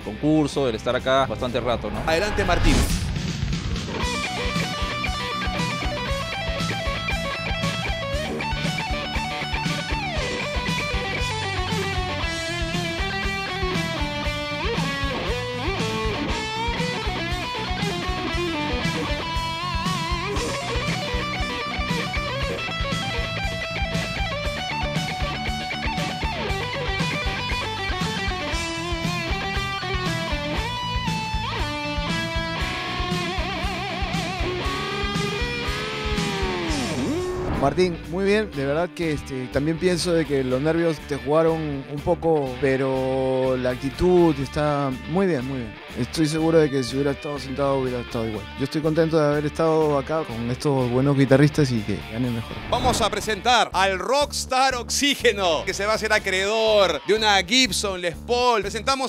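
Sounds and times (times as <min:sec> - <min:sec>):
electric guitar solo: 0:03.9 - 0:37.4.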